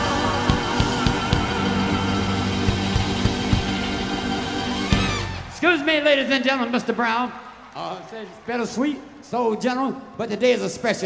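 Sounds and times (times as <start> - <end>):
drum strikes: 0.0 - 5.4.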